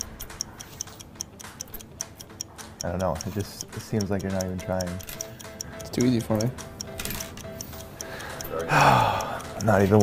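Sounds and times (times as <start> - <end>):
clock ticking quickly: 0.0 - 10.0.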